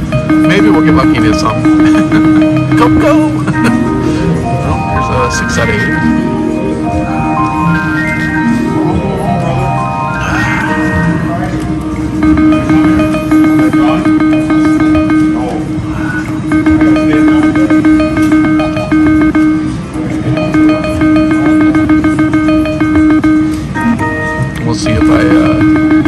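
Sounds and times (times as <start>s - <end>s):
casino music: 0.0s - 26.0s
short electronic tones: 0.0s - 26.0s
steady electronic hum: 0.0s - 26.0s.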